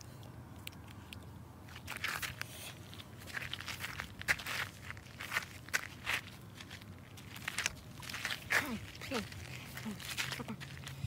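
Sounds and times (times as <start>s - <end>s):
crisp footsteps: 1.6s - 11.0s.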